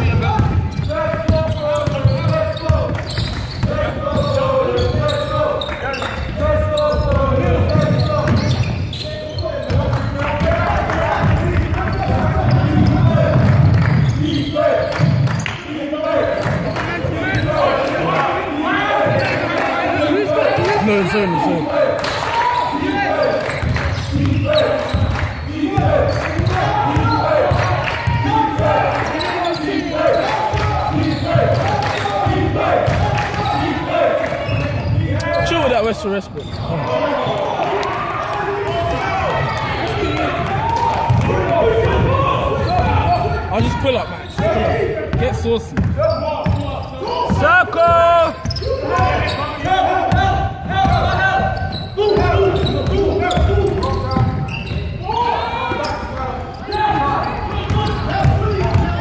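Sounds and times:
players shouting: 0.0s - 59.0s
basketball bouncing on wooden floor: 0.1s - 5.1s, 9.7s - 14.2s, 40.5s - 43.2s, 44.4s - 46.6s, 50.1s - 54.5s, 57.6s - 59.0s.

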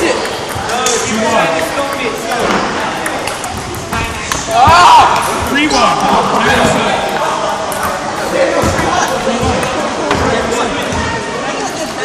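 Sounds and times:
background chatter of voices: 0.0s - 12.0s
table tennis ball clicking: 1.8s - 4.4s.

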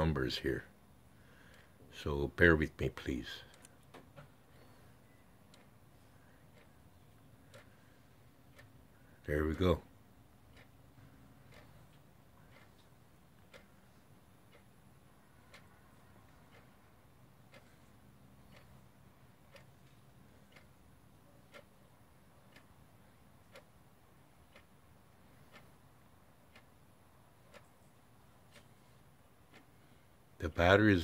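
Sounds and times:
faint regular ticking: 0.0s - 31.0s.

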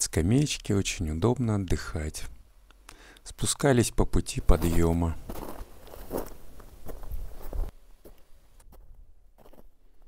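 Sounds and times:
boots crunching in snow: 4.5s - 8.8s, 9.4s - 9.7s.

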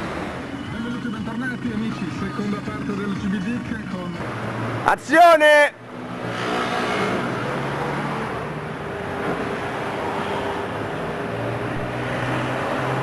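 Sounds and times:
car engines humming: 0.0s - 13.0s.

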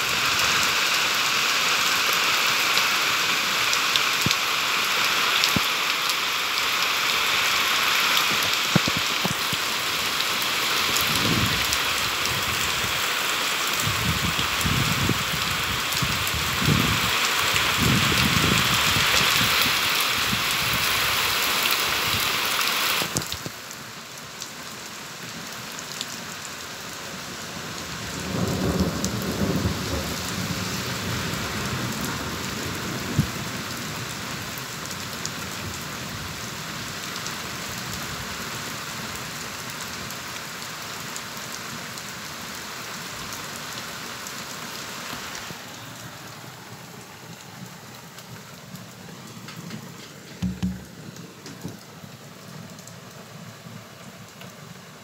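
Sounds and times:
heavy rain pouring: 0.0s - 55.0s
low rumble of thunder: 28.1s - 33.8s.

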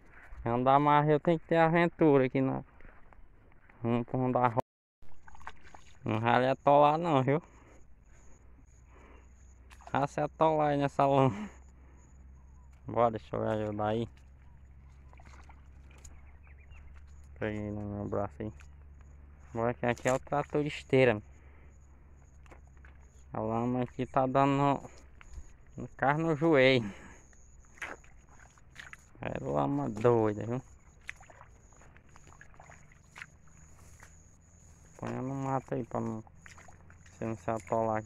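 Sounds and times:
footsteps wading through mud: 0.0s - 6.6s, 7.5s - 11.4s, 12.2s - 38.0s.

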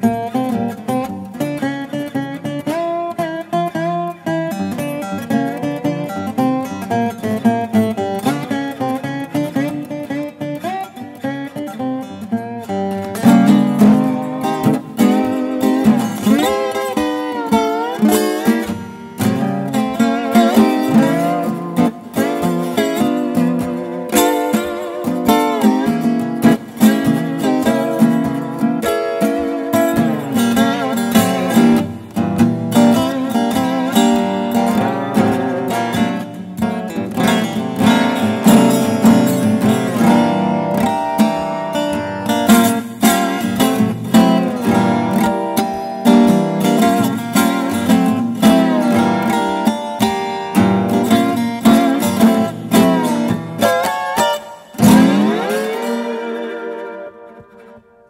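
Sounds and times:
lap steel guitar with sliding notes: 0.0s - 58.0s.

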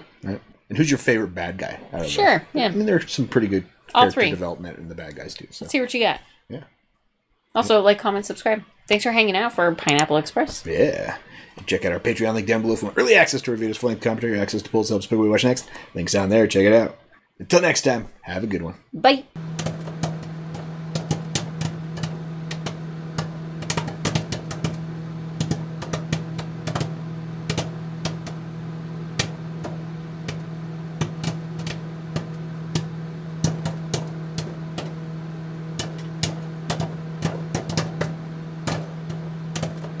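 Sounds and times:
microwave oven hum: 0.2s - 3.2s, 3.9s - 5.2s, 19.4s - 40.0s
popcorn popping: 19.4s - 40.0s.

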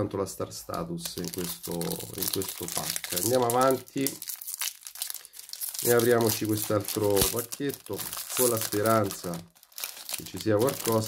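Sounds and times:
foil wrapper crinkling and tearing: 1.0s - 11.0s.

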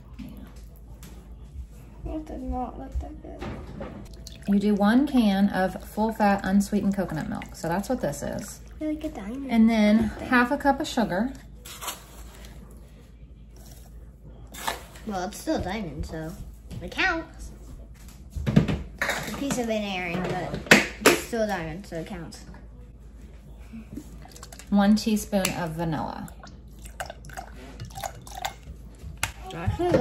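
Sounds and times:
liquid dripping: 4.1s - 9.1s.

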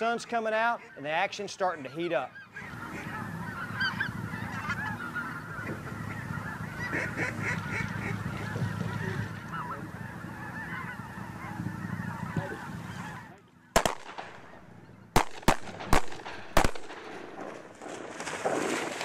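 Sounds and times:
geese honking in flight: 0.0s - 15.6s.

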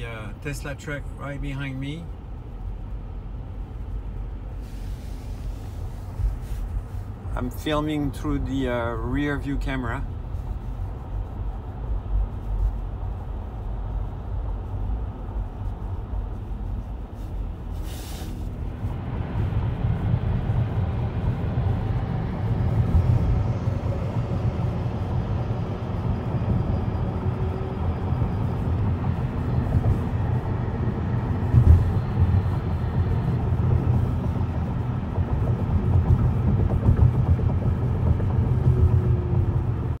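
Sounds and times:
road and tyre rumble inside car: 0.0s - 40.0s.

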